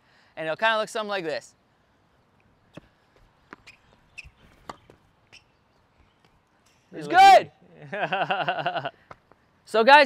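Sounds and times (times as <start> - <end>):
racket hitting tennis ball: 3.5 - 5.5
tennis ball bouncing on court: 3.5 - 5.5.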